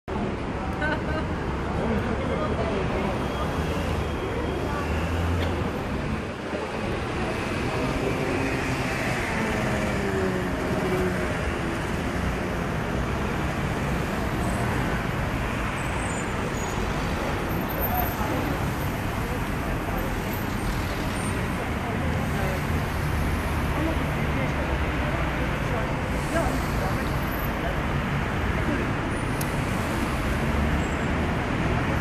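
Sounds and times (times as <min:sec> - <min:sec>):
cars idling in traffic: 0:00.1 - 0:32.0.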